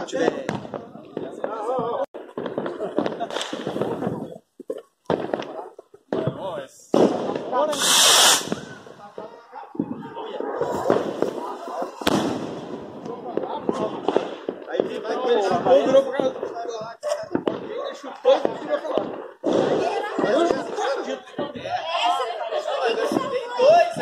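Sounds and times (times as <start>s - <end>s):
fireworks cracking and popping: 0.0s - 24.0s
firework hissing rush: 7.6s - 9.0s.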